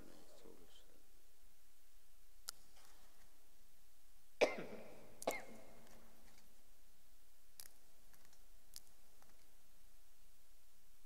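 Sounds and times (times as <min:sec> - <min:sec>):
person coughing: 0:04.4 - 0:05.7.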